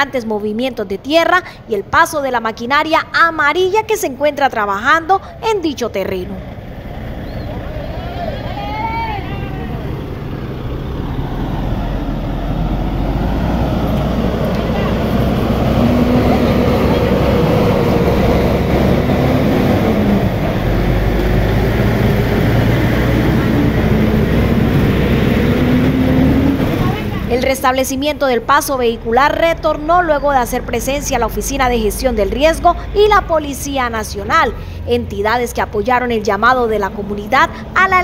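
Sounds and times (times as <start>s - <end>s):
people's voices: 0.0s - 10.4s, 14.4s - 18.2s, 26.6s - 38.0s
dump truck engine running: 0.0s - 38.0s.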